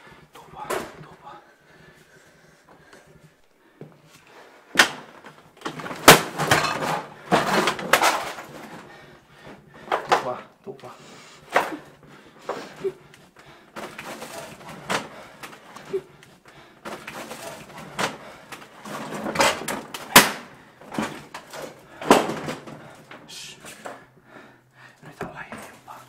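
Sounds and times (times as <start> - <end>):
clothing rustling: 10.9 - 24.0.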